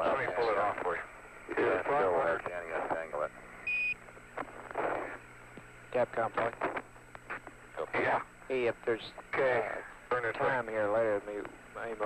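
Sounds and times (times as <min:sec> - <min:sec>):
radio static hiss: 0:00.0 - 0:12.0.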